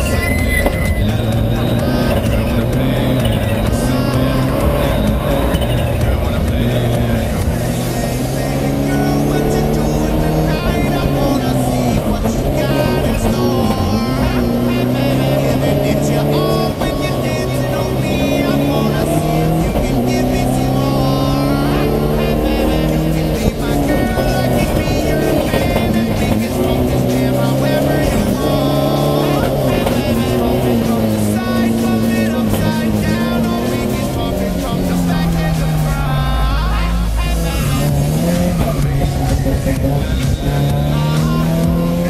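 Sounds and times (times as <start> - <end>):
music playing: 0.0 - 42.0
race car engine revving: 0.0 - 42.0.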